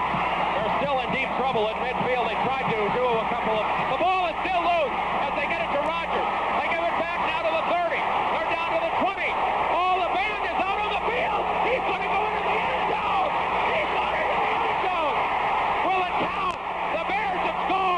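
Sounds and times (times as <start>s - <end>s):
stadium crowd roar: 0.0s - 17.9s
announcer shouting play-by-play: 0.7s - 15.2s, 15.8s - 17.9s.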